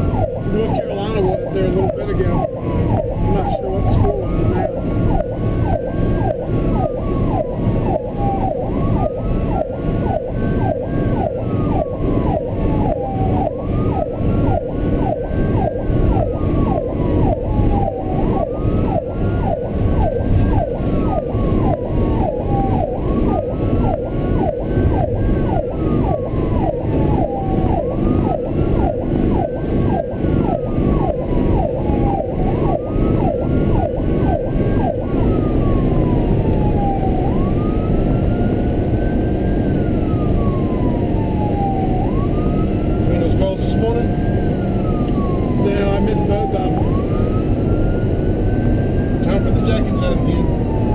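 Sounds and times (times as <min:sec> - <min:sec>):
ambulance siren wailing: 0:00.0 - 0:50.9
fast repeating siren tone: 0:00.0 - 0:50.9
road noise: 0:00.0 - 0:50.9.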